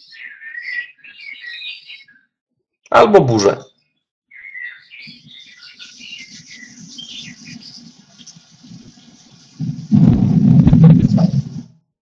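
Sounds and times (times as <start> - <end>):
birds chirping: 0.0 - 11.6
faint rain hiss: 6.3 - 11.6
thunder rumble: 8.6 - 11.7.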